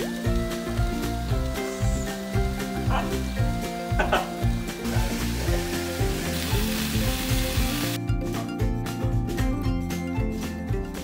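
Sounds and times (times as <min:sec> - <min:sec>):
food sizzling on stovetop: 0:00.0 - 0:08.0
music with steady beat: 0:00.0 - 0:11.0.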